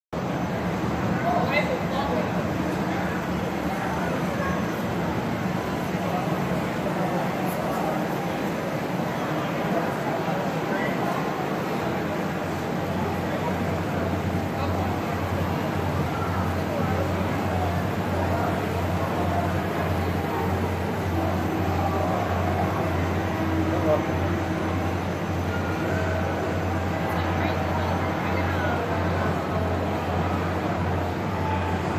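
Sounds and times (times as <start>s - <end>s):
busy hall background noise: 0.2s - 31.9s
model train rumbling: 1.8s - 31.9s.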